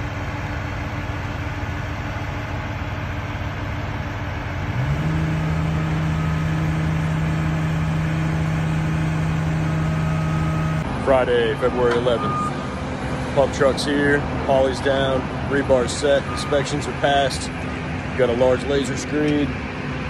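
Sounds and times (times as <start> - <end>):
heavy diesel truck engines running: 0.0 - 20.0.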